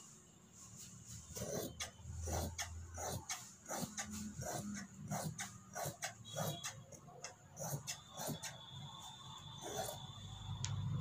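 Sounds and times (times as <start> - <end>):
shears snipping cloth: 1.4 - 6.8.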